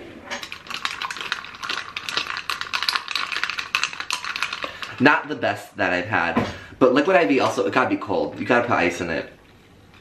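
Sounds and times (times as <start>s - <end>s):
metal straw clinking ice cubes: 0.4s - 5.1s.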